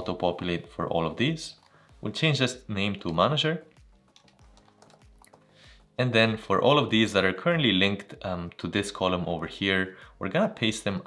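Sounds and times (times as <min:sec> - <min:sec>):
computer keyboard typing: 0:03.7 - 0:05.6.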